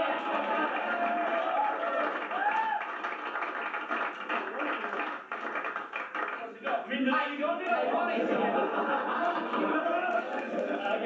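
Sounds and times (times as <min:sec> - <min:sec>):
sharp taps or claps: 0:02.3 - 0:06.4.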